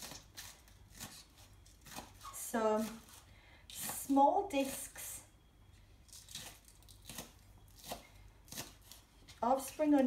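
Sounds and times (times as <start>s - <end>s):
knife slicing onion on chopping board: 0.0s - 4.9s, 6.1s - 10.0s.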